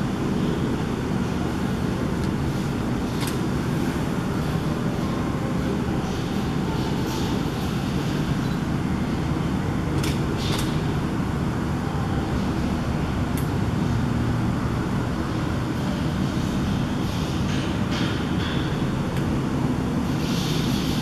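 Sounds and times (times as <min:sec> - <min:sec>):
low rumbling background noise: 0:00.0 - 0:21.0.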